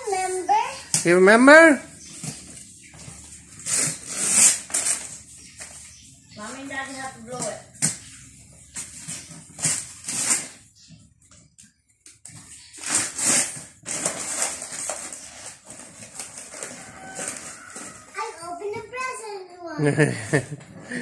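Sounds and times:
wrapping paper rustling and tearing: 0:03.2 - 0:05.8, 0:08.8 - 0:10.7, 0:12.7 - 0:18.1.

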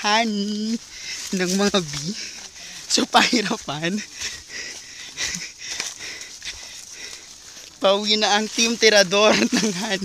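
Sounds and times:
footsteps through vegetation: 0:00.0 - 0:10.0.

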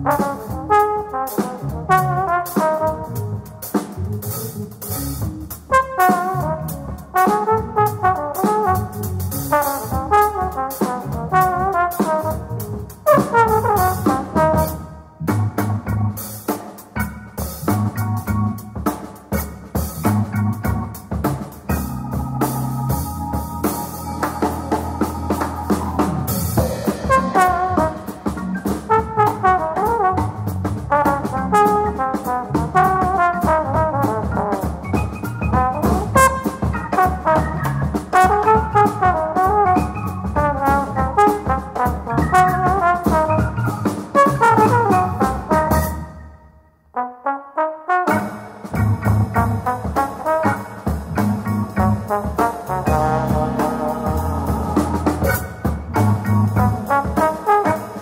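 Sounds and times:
trombone playing fast melody: 0:00.0 - 0:04.7, 0:05.6 - 0:14.9, 0:21.7 - 0:46.2, 0:46.9 - 0:58.0
falling trombone glide: 0:00.0 - 0:05.0, 0:05.7 - 0:14.9, 0:21.7 - 0:46.2, 0:47.0 - 0:58.0
drums: 0:00.0 - 0:47.0, 0:47.8 - 0:58.0
keyboard: 0:20.1 - 0:28.8, 0:50.5 - 0:58.0.

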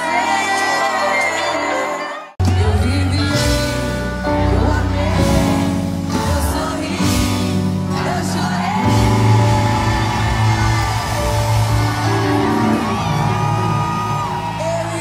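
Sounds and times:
woman singing: 0:00.0 - 0:12.6
live band music: 0:00.0 - 0:15.0
whoops and shouts: 0:08.7 - 0:15.0.

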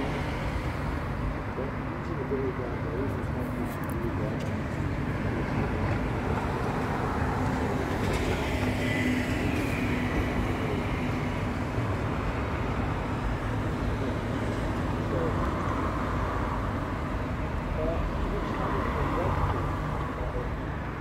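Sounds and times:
low rumbling urban background: 0:00.0 - 0:21.0.

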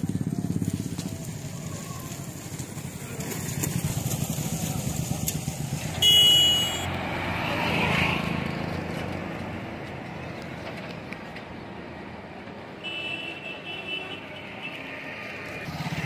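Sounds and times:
auto-rickshaw passing: 0:00.0 - 0:16.0
short horn beep: 0:06.0 - 0:06.9.

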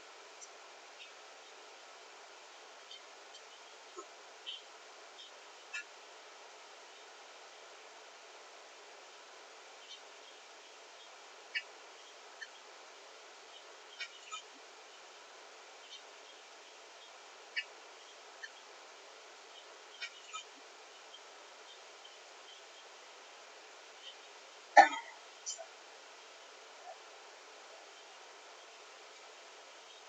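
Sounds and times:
steady faint hiss: 0:00.0 - 0:30.0.

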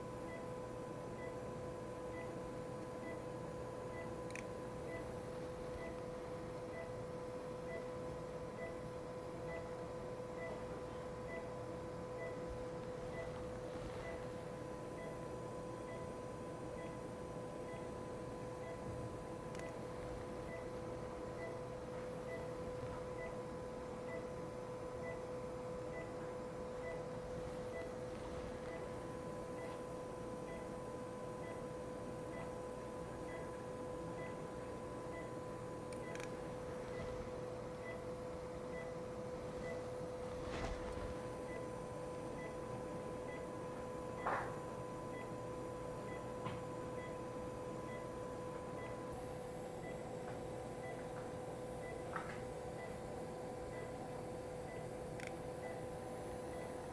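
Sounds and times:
steady electrical hum: 0:00.0 - 0:56.9
faint regular beep: 0:07.7 - 0:08.0, 0:10.4 - 0:10.6, 0:13.1 - 0:13.4, 0:14.0 - 0:14.3, 0:15.0 - 0:15.2, 0:15.9 - 0:16.2, 0:20.4 - 0:20.8, 0:21.4 - 0:21.7, 0:22.3 - 0:22.6, 0:24.0 - 0:24.4, 0:25.0 - 0:25.3, 0:25.9 - 0:27.1, 0:27.7 - 0:28.0, 0:28.6 - 0:29.8, 0:30.4 - 0:30.7, 0:31.4 - 0:31.7, 0:32.3 - 0:32.6, 0:33.3 - 0:33.6, 0:34.2 - 0:34.4, 0:35.1 - 0:36.3, 0:37.8 - 0:39.9, 0:42.4 - 0:42.7, 0:43.3 - 0:43.5, 0:46.1 - 0:46.3, 0:47.0 - 0:49.1, 0:50.8 - 0:51.2, 0:53.7 - 0:54.0, 0:54.6 - 0:55.0, 0:55.6 - 0:56.9.

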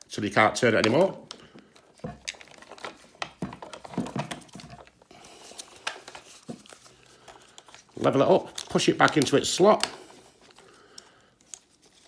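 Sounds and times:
plastic clicks and knocks: 0:00.8 - 0:05.0.

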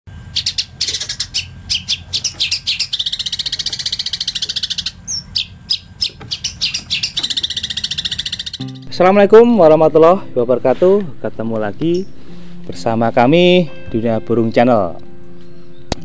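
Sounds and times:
shrike singing: 0:00.1 - 0:10.1.

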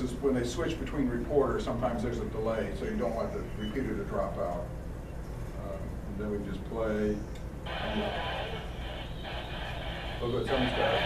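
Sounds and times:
radio bulletin through small speaker: 0:07.7 - 0:11.0.

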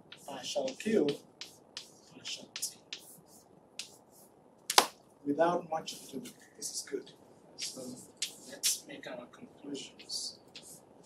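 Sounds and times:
chalk ticking on blackboard: 0:00.0 - 0:04.1, 0:07.6 - 0:08.8, 0:10.0 - 0:10.8.

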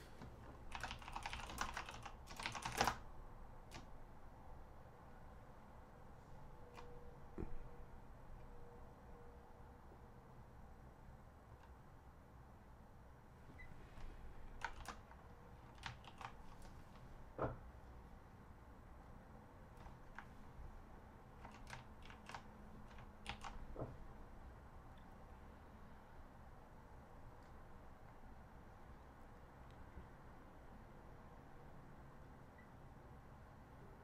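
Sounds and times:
low room hiss: 0:00.0 - 0:34.0
computer keyboard typing clicks: 0:00.7 - 0:03.1, 0:03.7 - 0:03.9, 0:14.5 - 0:16.7, 0:21.4 - 0:23.8.

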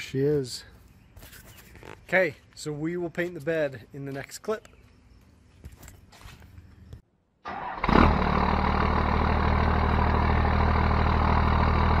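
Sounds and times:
diesel engine starting and idling: 0:07.4 - 0:12.0.

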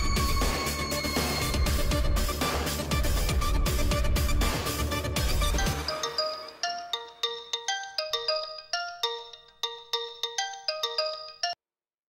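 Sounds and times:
mobile phone ringtone: 0:05.5 - 0:11.6.

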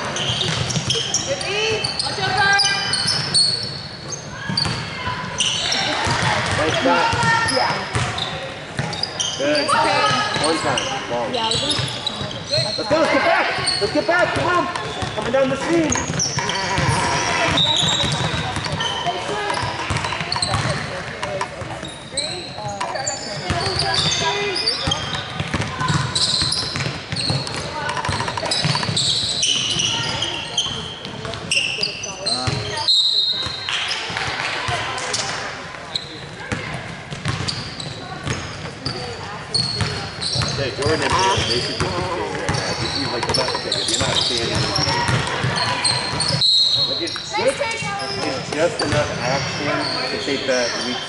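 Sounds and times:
sneakers squeaking: 0:00.0 - 0:51.0.

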